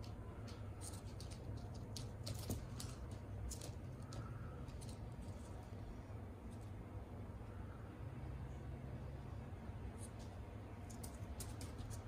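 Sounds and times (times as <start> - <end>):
chicks pecking and stepping: 0.0 - 5.8, 10.0 - 12.0
low steady hum: 0.0 - 12.0.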